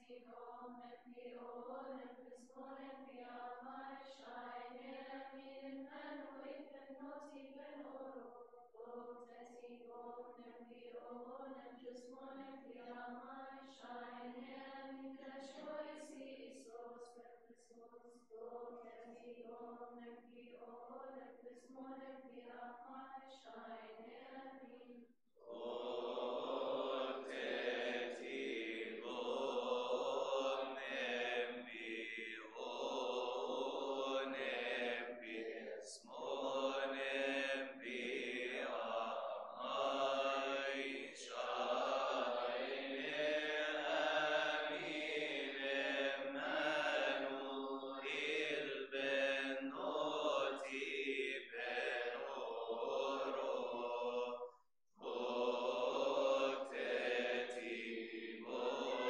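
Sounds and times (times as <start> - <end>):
male voices chanting a hymn: 25.4 - 54.4, 55.0 - 59.0.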